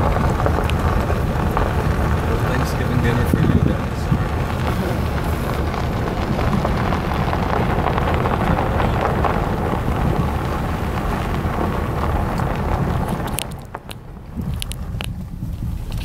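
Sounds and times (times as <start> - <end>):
wind and road noise: 0.0 - 16.0
wind buffeting microphone: 0.0 - 16.0.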